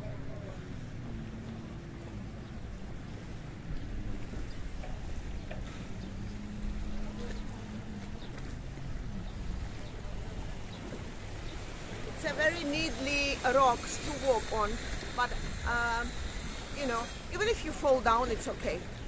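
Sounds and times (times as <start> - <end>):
wind buffeting microphone: 0.0 - 19.0
waves washing on rocks: 2.8 - 19.0.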